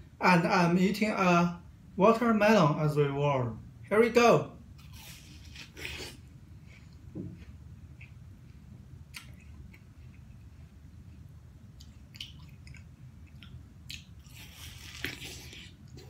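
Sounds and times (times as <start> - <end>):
chewing watermelon wet smacks: 9.1 - 16.0.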